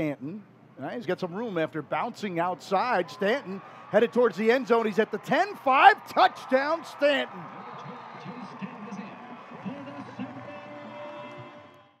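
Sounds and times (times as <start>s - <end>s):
music playing: 7.7s - 11.9s.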